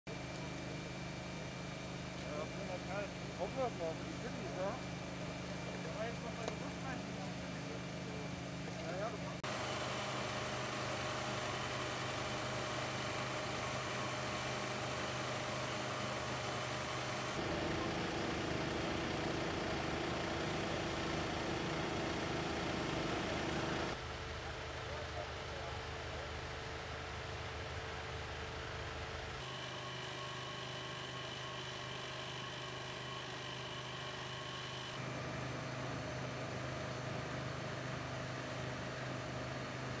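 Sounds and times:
idling vehicle engines hum: 0.1s - 40.0s
rescue equipment running: 0.1s - 40.0s.

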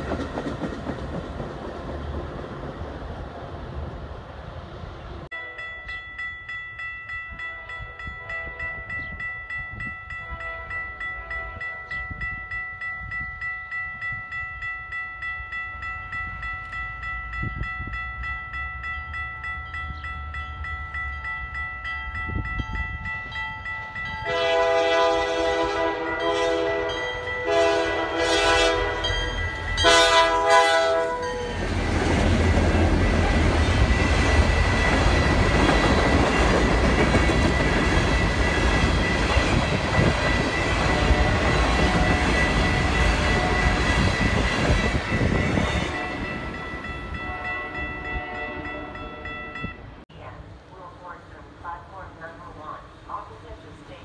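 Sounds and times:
train rumbling on rails: 0.0s - 5.4s, 7.2s - 54.0s
grade crossing bells ringing: 5.3s - 50.0s
locomotive air horn blasts: 7.4s - 8.9s, 10.1s - 11.8s, 24.2s - 29.2s, 29.8s - 31.4s, 40.8s - 42.3s, 47.2s - 49.4s.

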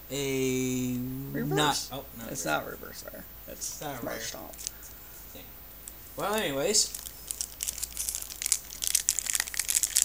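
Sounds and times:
plastic wrapper crinkling: 6.8s - 10.0s.

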